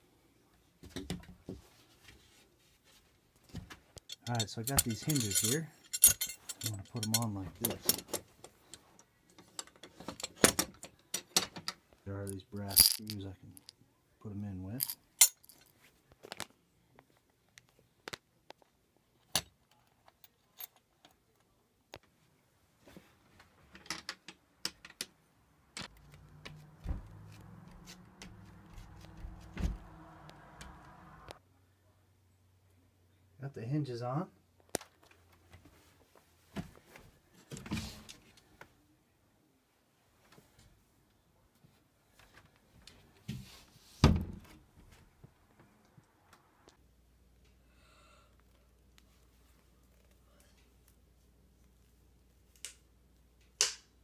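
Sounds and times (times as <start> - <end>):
metal hardware clinking: 4.0 - 13.7, 14.8 - 15.7
closet door thumping shut: 44.0 - 44.5.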